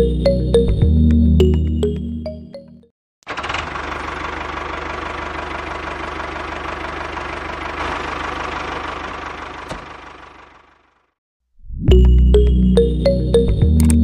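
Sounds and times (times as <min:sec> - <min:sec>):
tractor engine running: 0:03.2 - 0:11.0.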